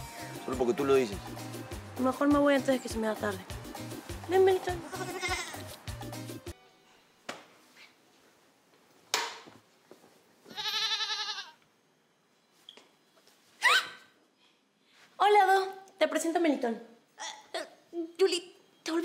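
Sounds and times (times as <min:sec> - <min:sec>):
background music: 0:00.0 - 0:07.2
young goat bleating: 0:04.8 - 0:05.6, 0:10.5 - 0:11.6.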